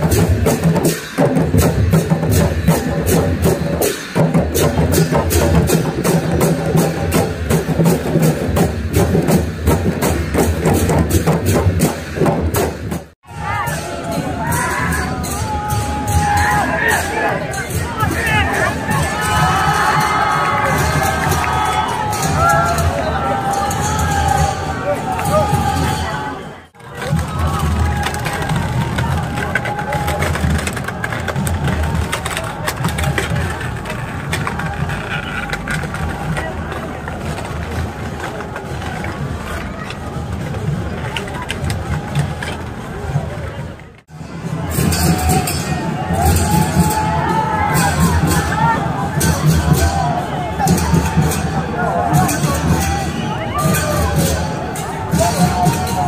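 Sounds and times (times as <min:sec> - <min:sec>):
crowd voices: 0:00.0 - 0:56.0
drums beating steadily: 0:00.0 - 0:56.0
wooden wheels rumbling on road: 0:00.0 - 0:56.0.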